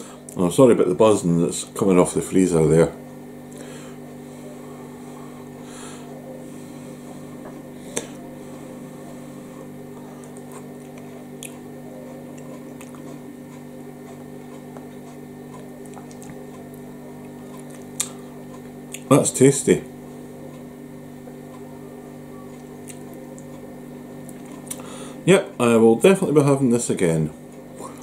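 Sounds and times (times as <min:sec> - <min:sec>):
freezer electrical buzz: 0:00.0 - 0:28.0
faint chewing: 0:09.4 - 0:19.1, 0:22.4 - 0:25.0.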